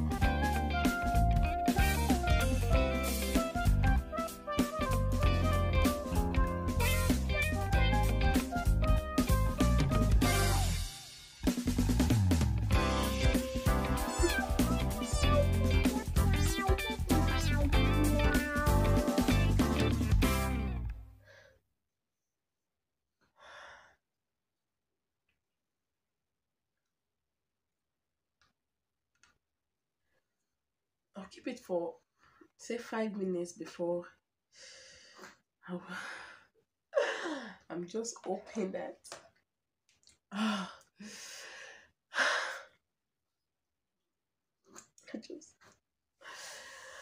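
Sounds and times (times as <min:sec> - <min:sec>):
breathy sigh: 0:34.6 - 0:37.7, 0:40.3 - 0:42.8.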